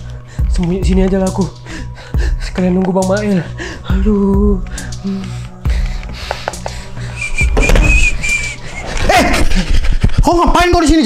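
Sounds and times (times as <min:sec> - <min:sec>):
thin high whistle: 0:07.2 - 0:08.8.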